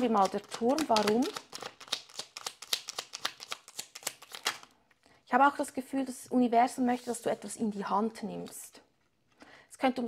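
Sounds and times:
cards being shuffled: 0.0s - 4.7s.

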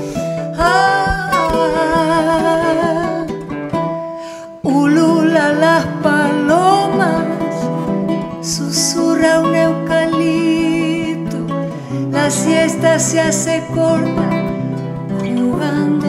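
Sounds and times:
charango and guitar strumming: 0.0s - 16.0s
woman singing: 0.0s - 16.0s.

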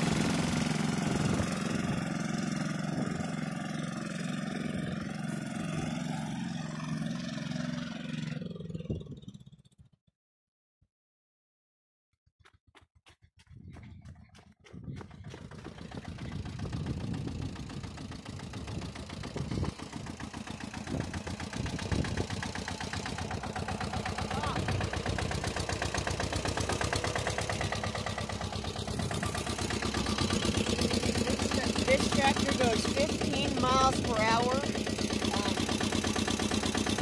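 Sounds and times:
tractor diesel engine running: 0.0s - 9.7s, 13.4s - 37.0s.

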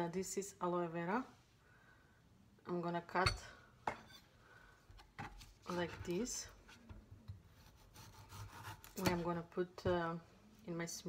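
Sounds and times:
knife sawing through leaf: 7.6s - 9.0s.

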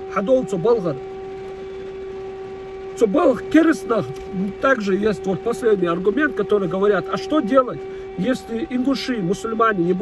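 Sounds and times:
air-raid siren: 0.0s - 10.0s.

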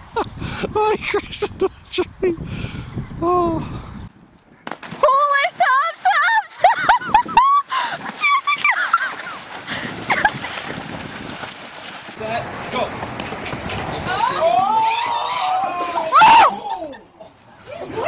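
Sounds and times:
water splashing and sloshing: 4.7s - 18.0s.

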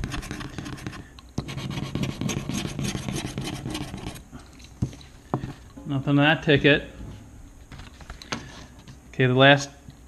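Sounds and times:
scratching lottery ticket: 0.0s - 4.2s.

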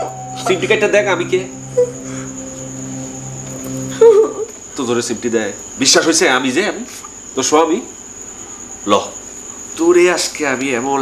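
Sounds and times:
low hum: 0.0s - 4.8s
crickets chirring: 0.0s - 11.0s.

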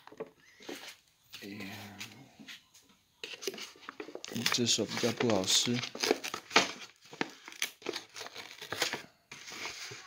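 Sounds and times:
foil paper lid crinkling: 3.2s - 10.0s.

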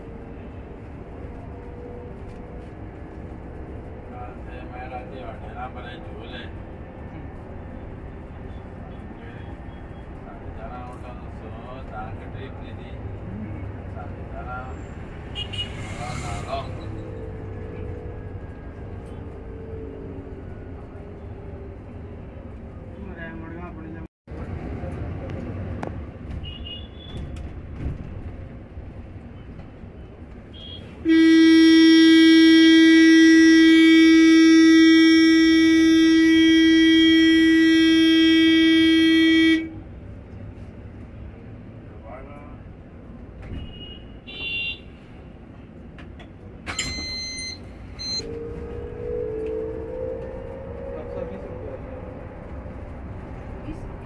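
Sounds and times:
low rumble of bus cabin: 0.0s - 15.1s, 16.2s - 54.0s
vehicle horn held steady: 31.1s - 39.8s.

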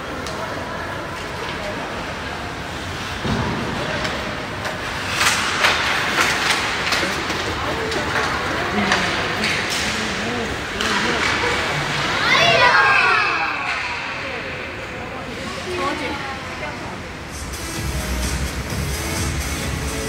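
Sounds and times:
skates scraping ice: 2.7s - 12.8s
hockey sticks clacking on puck: 3.8s - 12.2s.

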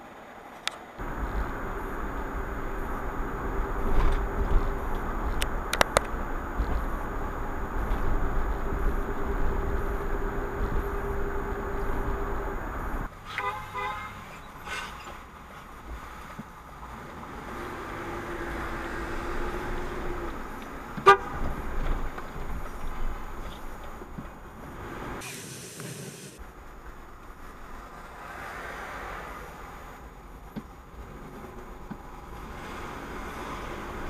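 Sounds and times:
car road noise on highway: 0.0s - 34.0s
car horns tooting: 1.0s - 15.2s, 21.0s - 21.9s.

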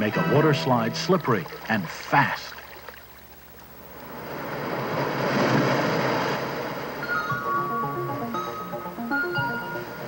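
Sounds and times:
rushing wash of noise: 3.9s - 7.1s
music with mallet notes: 7.0s - 10.0s.

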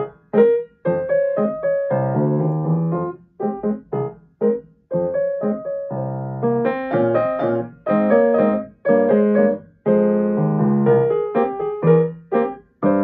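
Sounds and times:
grand piano chords: 0.0s - 13.0s.

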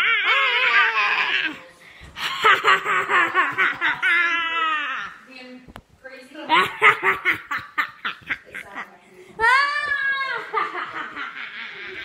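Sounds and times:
child laughing: 0.0s - 5.2s, 6.5s - 8.9s, 10.1s - 12.0s.

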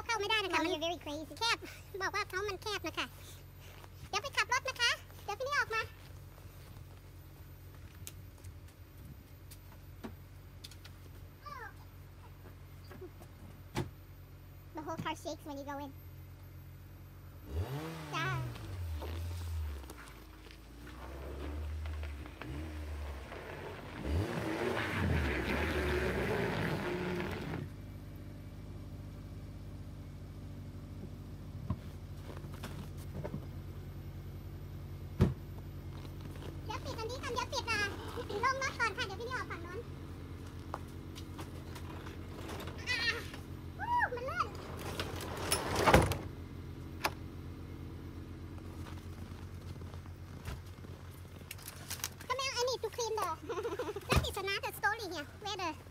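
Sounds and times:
steady low hum: 0.0s - 55.9s
car engine revving and idling: 15.9s - 55.9s.

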